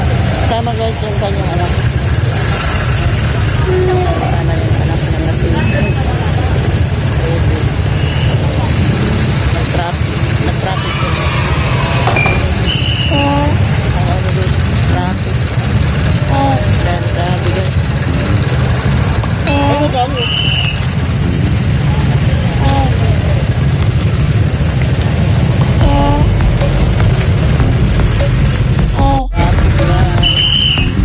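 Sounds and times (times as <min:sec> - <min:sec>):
vehicle engine running: 0:00.0 - 0:05.1, 0:05.7 - 0:31.0
people's voices: 0:00.0 - 0:31.0.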